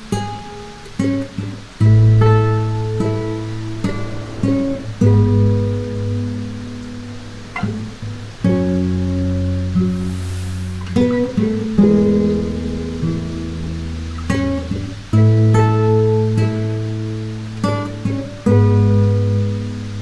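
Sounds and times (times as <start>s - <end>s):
fingerpicked acoustic guitar chords: 0.0s - 20.0s.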